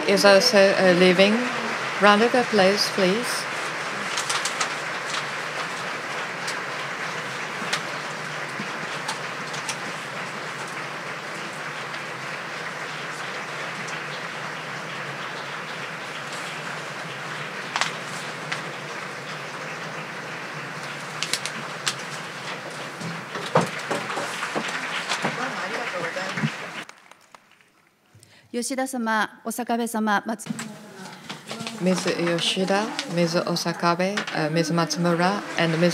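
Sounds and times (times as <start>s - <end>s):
audience applause: 0.0s - 27.5s, 31.0s - 35.9s.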